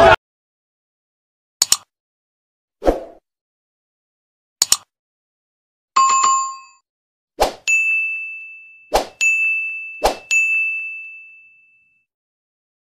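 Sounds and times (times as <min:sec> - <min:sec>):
click: 0:01.6 - 0:01.9, 0:04.6 - 0:04.9
high bell ding: 0:06.0 - 0:06.8, 0:07.7 - 0:12.1.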